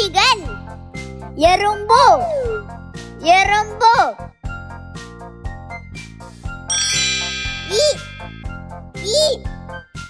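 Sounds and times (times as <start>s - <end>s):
children's background music: 0.0s - 6.1s, 6.7s - 10.0s
bright chime: 6.7s - 9.0s.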